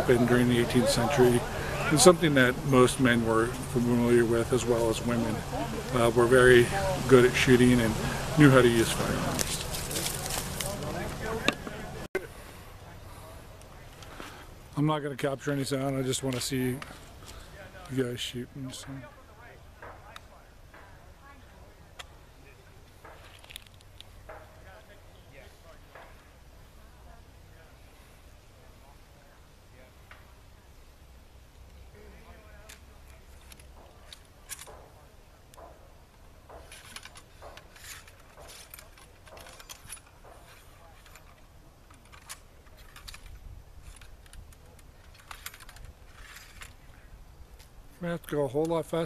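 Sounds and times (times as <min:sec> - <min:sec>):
muskets clicking and tapping: 0:00.0 - 0:12.2, 0:32.5 - 0:46.8
faint voices: 0:00.0 - 0:49.0
ramrods clicking and rattling: 0:32.6 - 0:49.0.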